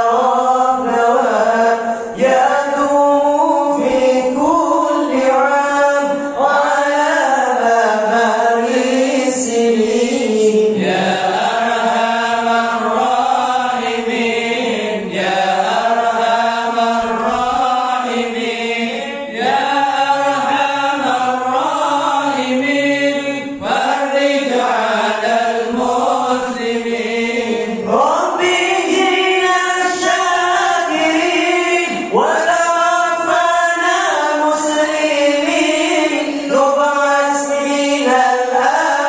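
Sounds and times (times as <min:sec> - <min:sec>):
men chanting into microphones: 0:00.0 - 0:39.0.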